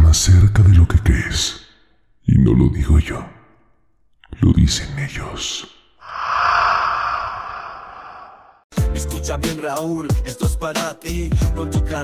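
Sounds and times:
breathy whoosh: 6.0 - 8.7.

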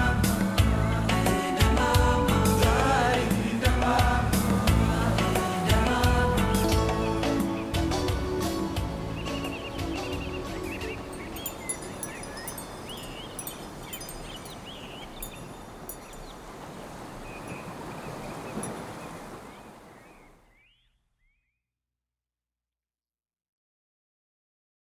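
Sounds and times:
closing music: 0.0 - 11.4
birds chirping: 5.1 - 21.5.

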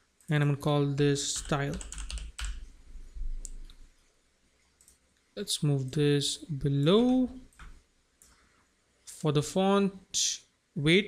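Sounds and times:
keyboard keys clicking: 1.4 - 2.6.

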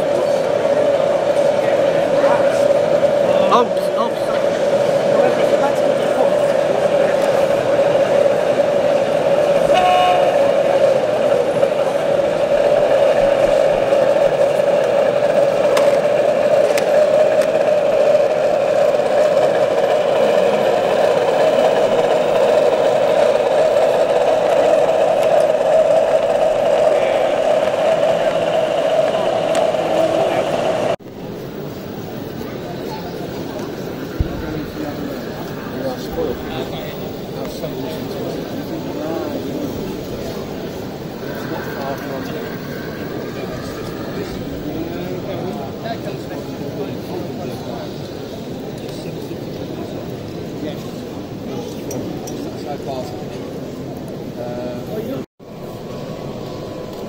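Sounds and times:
chatter of a busy hall: 0.0 - 57.0.

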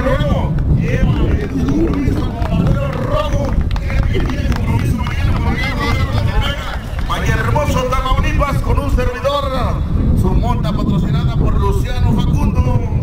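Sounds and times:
men talking: 0.0 - 13.0
steady low rumble: 0.0 - 13.0.

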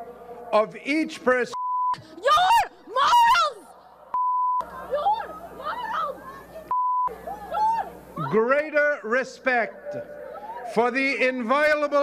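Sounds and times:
crowd noise: 0.0 - 12.0
censor bleep: 1.6 - 2.0, 4.2 - 4.6, 6.7 - 7.1
women screaming and shouting: 2.1 - 3.8, 4.7 - 6.5, 7.2 - 8.5, 10.3 - 10.7.

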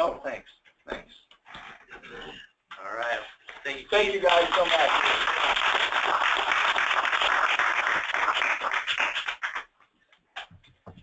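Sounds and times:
audience applauding: 3.7 - 9.7.

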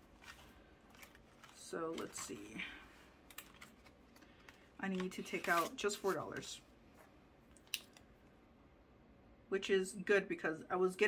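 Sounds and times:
plastic pages flipping: 0.0 - 2.6, 3.2 - 6.6.

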